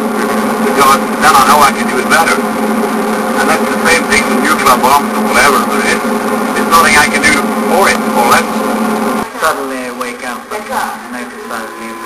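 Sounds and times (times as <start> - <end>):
vehicle engine and road drone: 0.0 - 12.0
man talking: 3.4 - 6.0, 6.6 - 8.6.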